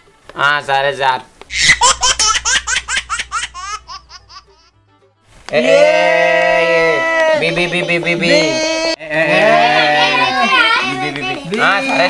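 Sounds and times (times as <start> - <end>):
high-pitched laughter: 1.5 - 4.7.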